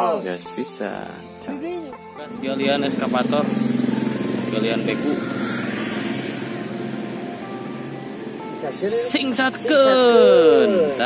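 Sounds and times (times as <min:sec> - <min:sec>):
vehicle engine hum: 0:02.4 - 0:10.1.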